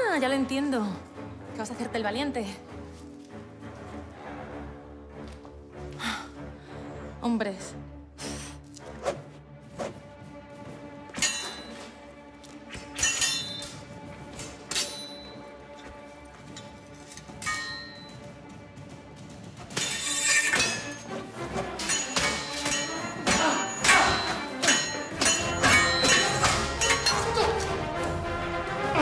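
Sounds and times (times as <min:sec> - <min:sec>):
orchestral film music: 0:00.0 - 0:29.0
swords clashing: 0:11.1 - 0:11.9, 0:12.7 - 0:15.3, 0:17.4 - 0:18.0, 0:19.7 - 0:27.7.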